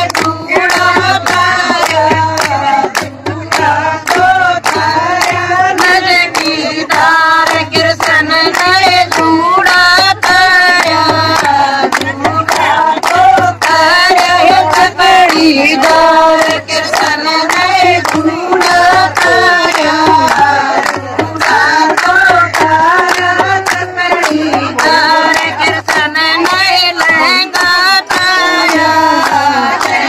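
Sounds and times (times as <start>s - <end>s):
hand claps: 0.0s - 30.0s
women singing together: 0.0s - 30.0s.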